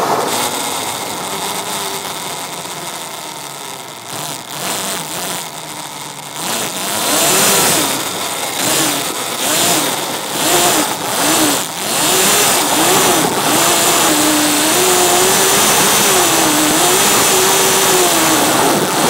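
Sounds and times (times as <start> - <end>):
electric motor whining: 0.0 - 19.0.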